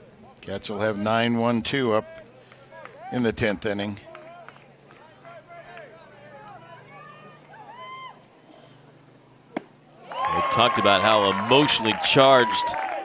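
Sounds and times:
distant voices calling out: 0:00.0 - 0:13.0
steady low hum: 0:00.0 - 0:13.0
ball smacking into mitt: 0:09.5 - 0:09.7.

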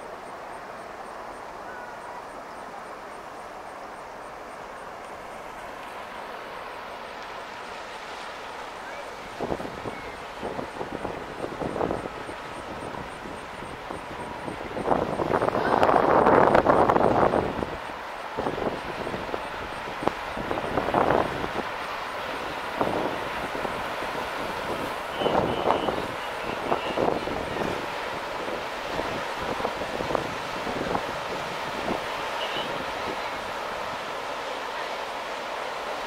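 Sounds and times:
ship engine low rumble: 0:00.0 - 0:36.0
wind gusting on microphone: 0:09.1 - 0:36.0.

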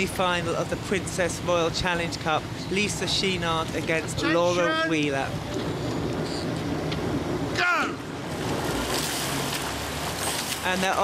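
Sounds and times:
water noise: 0:00.0 - 0:11.0
wind: 0:00.0 - 0:11.0.

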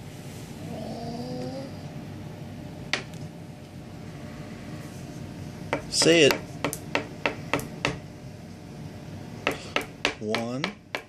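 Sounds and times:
person speaking: 0:05.8 - 0:06.5, 0:09.6 - 0:10.8
crayon tapping on tabletop: 0:09.4 - 0:11.0.

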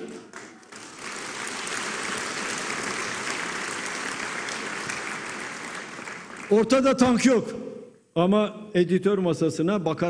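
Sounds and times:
audience applauding: 0:00.0 - 0:07.2.

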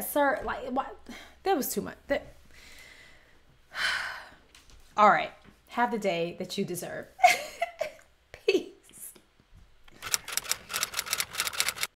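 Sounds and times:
keyboard typing clicks: 0:09.9 - 0:11.9.

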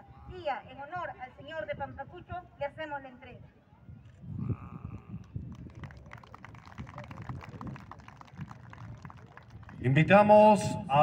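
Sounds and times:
low rumbling on microphone: 0:03.9 - 0:09.9
scattered clapping: 0:05.0 - 0:10.0.

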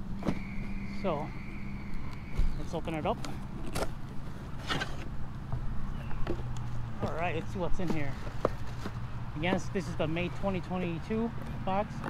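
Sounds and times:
steady low hum: 0:00.0 - 0:08.4
cardboard flaps scraping and rustling: 0:02.4 - 0:05.1, 0:06.3 - 0:09.7.

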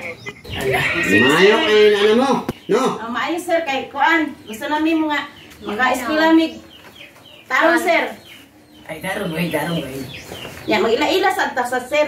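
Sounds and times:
chicken calling: 0:00.0 - 0:03.1.

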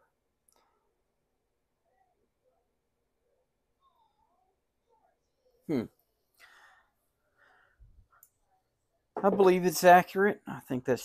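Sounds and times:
man humming hmm: 0:05.7 - 0:05.9
soft breath out: 0:06.4 - 0:08.2.

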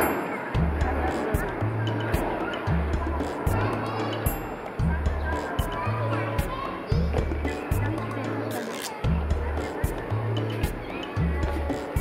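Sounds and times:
hand percussion: 0:00.0 - 0:12.0
light-hearted background music: 0:00.0 - 0:12.0
repeating bass line: 0:00.6 - 0:04.0, 0:04.8 - 0:06.1.

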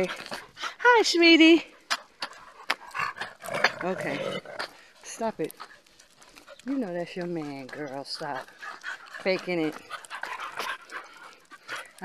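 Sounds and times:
dogs breathing: 0:00.0 - 0:12.0
dogs scuffling: 0:00.0 - 0:12.0.

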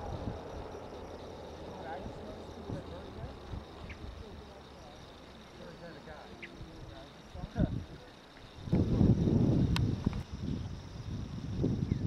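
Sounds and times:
flying insect buzzing: 0:00.0 - 0:12.0
faint distant voices: 0:01.3 - 0:08.6.

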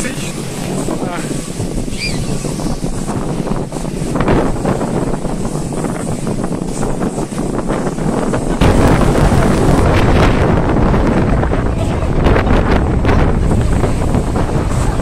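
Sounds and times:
jet blast wind rumble: 0:00.0 - 0:15.0
jet engines roaring: 0:00.0 - 0:15.0.

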